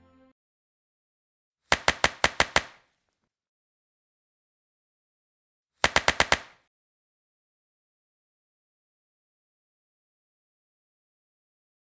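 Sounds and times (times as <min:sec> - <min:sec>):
sharp clicks: 0:01.7 - 0:02.8, 0:05.8 - 0:06.6.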